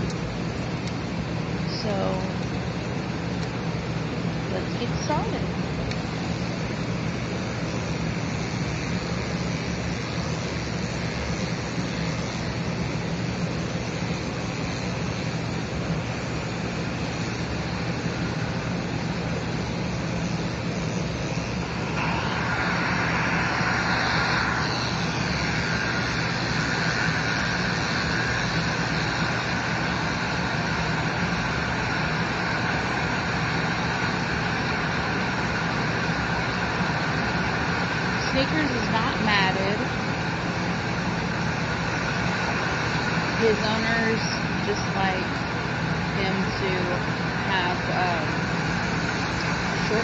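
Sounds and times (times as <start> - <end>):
electric clippers humming: 0.0 - 3.6, 4.6 - 50.0
brighter buzz: 0.0 - 50.0.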